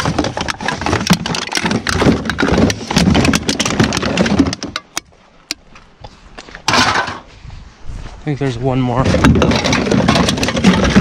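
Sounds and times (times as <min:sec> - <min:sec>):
bottles and cans clattering: 0:00.0 - 0:05.0, 0:06.6 - 0:07.2, 0:09.1 - 0:11.0.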